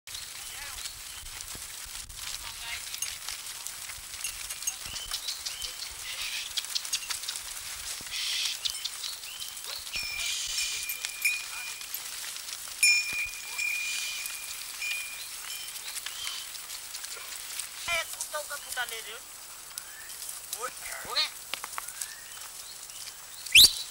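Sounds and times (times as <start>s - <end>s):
hooves clattering on rock: 0.1s - 19.1s, 19.7s - 23.9s
high whistles: 23.5s - 23.9s.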